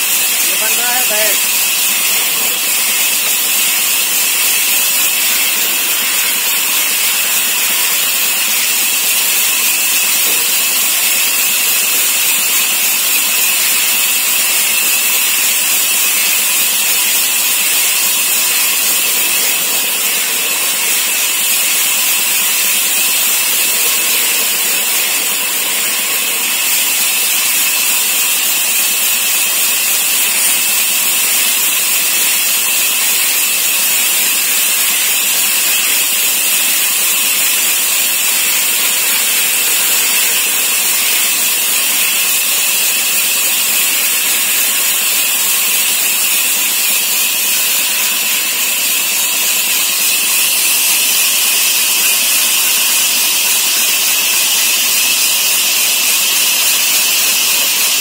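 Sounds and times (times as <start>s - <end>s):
band saw cutting wood: 0.0s - 45.0s.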